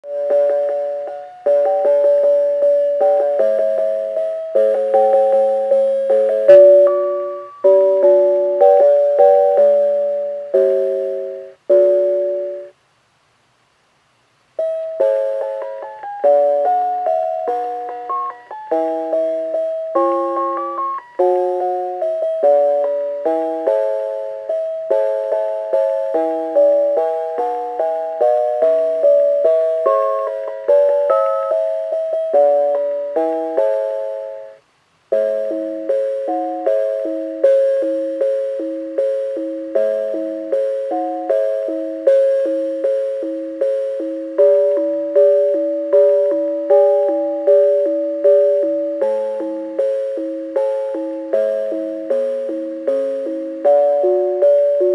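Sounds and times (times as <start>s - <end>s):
bell chime melody from speaker: 0.0s - 12.7s, 14.8s - 34.6s, 35.2s - 54.9s.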